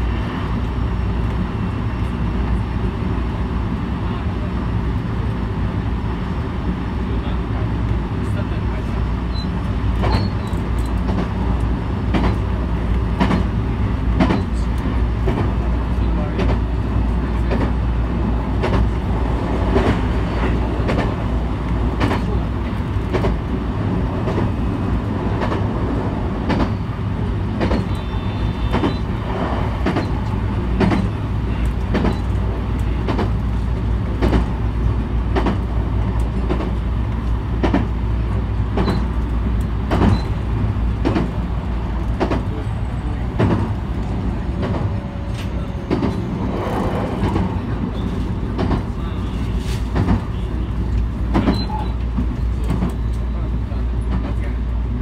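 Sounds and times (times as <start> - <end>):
train low rumble: 0.0 - 55.0
wheels clacking on track: 6.7 - 55.0.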